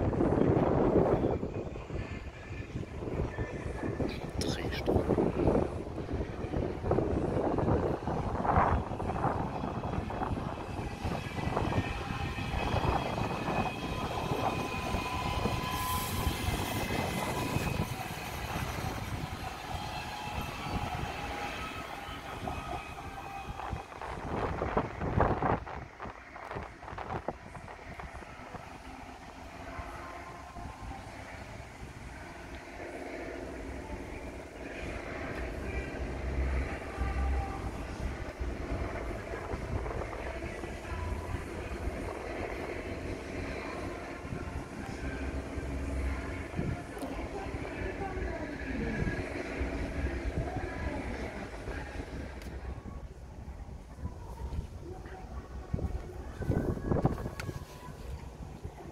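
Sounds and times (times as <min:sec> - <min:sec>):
electric train running past: 0:00.0 - 0:58.9
steady high tones: 0:07.8 - 0:25.6.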